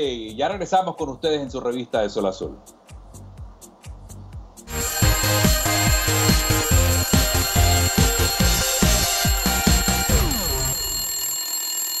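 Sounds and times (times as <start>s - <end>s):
alarm clock bell ringing: 4.7s - 12.0s
jingle music: 4.7s - 12.0s.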